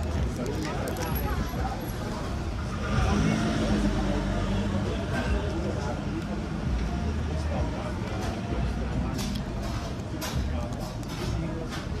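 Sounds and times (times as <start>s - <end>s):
vehicle engine passing by: 2.7s - 5.0s.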